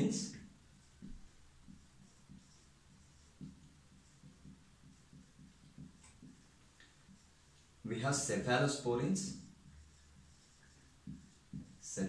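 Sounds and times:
whiteboard marker writing: 0.0s - 12.0s.

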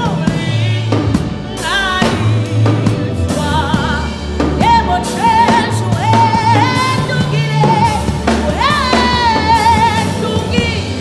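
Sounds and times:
instrumental accompaniment with bass: 0.0s - 11.0s
woman singing gospel song: 0.0s - 11.0s.

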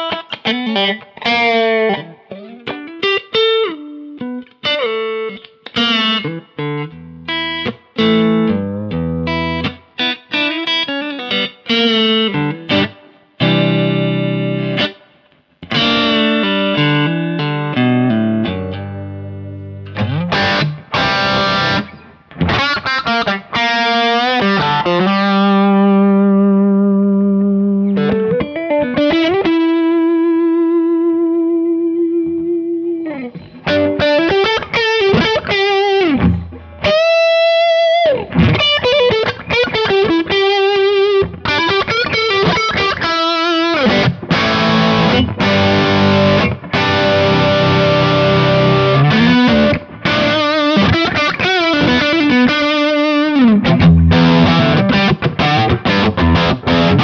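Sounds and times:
driven electric guitar: 0.0s - 57.0s.

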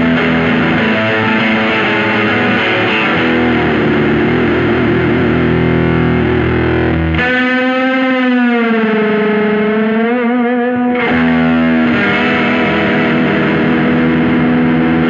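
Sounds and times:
distorted electric guitar: 0.0s - 15.0s.

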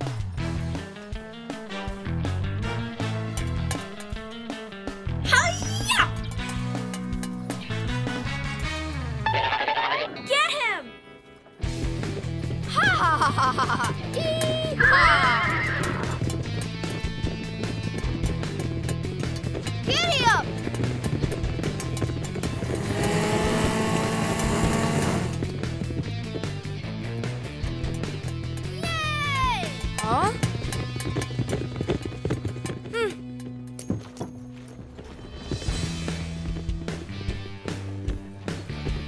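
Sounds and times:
cartoon background music: 0.0s - 16.8s, 19.6s - 21.0s, 26.0s - 30.6s.

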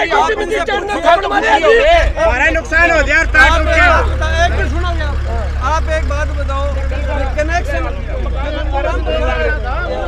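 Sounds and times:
men arguing: 0.0s - 10.0s
steady low rumble: 1.8s - 8.6s.

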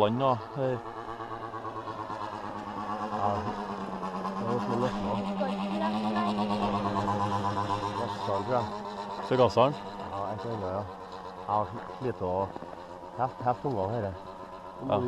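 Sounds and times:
model airplane engine buzzing: 0.0s - 15.0s.

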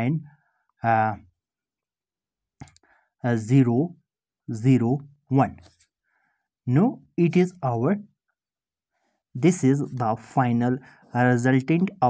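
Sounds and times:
person speaking: 4.5s - 5.8s, 9.4s - 12.0s.

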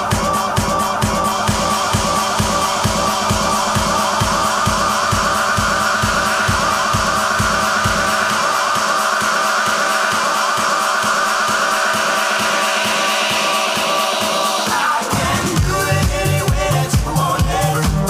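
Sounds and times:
four-on-the-floor kick drum: 0.0s - 18.0s.

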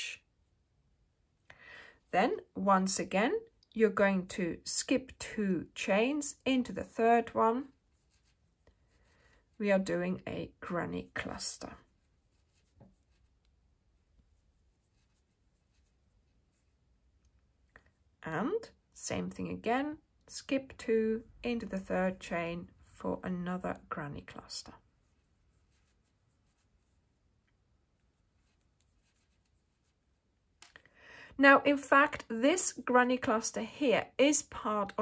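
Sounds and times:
yarn rubbing on crochet hook: 4.7s - 19.4s, 20.3s - 30.6s.

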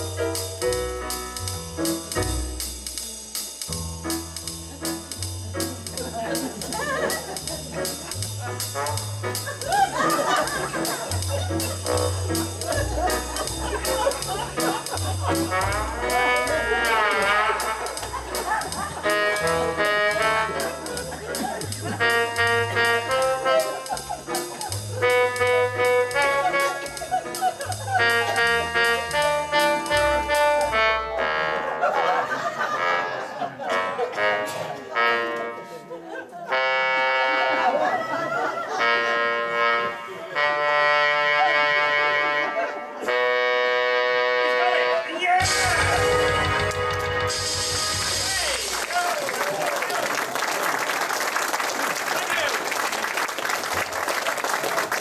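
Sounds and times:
bass line: 0.0s - 32.8s, 43.1s - 49.3s
electronic organ brass voice: 7.8s - 35.8s, 36.5s - 37.8s, 38.7s - 48.9s.

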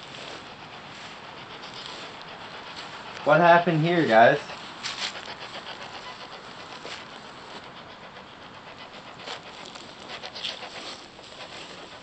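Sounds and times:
rapid faint ticks: 0.0s - 12.0s
radio static hiss: 1.1s - 5.4s.

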